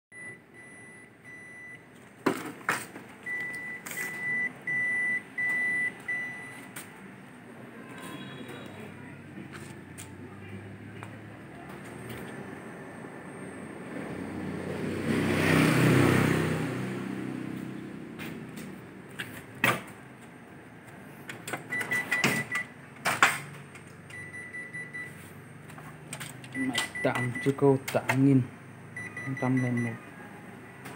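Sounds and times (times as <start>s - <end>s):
copier beeping: 3.2s - 6.8s, 21.2s - 22.8s, 24.1s - 25.4s, 26.4s - 28.4s, 29.0s - 30.0s.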